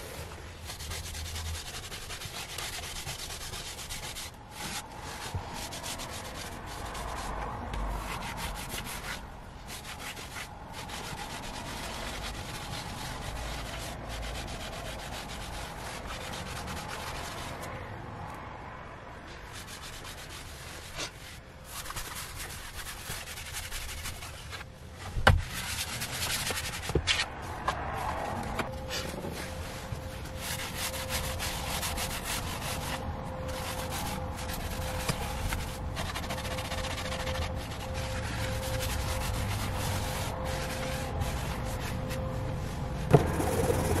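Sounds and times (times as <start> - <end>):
wipe rubbing car seat: 0.0 - 17.7, 28.2 - 44.0.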